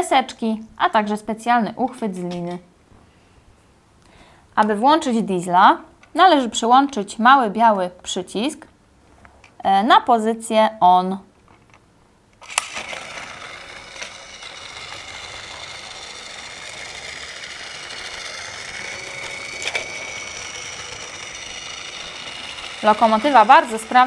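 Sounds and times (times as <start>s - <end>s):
toy train clicks: 12.4s - 24.0s
toy train motor whirring: 12.4s - 24.0s.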